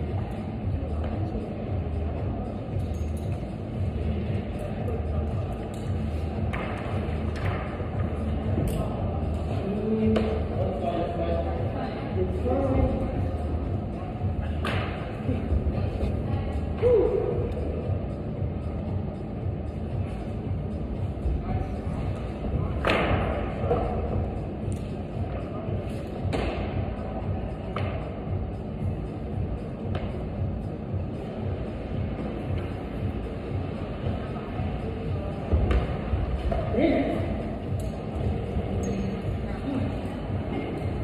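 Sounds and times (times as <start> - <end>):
background music: 0.0 - 41.0.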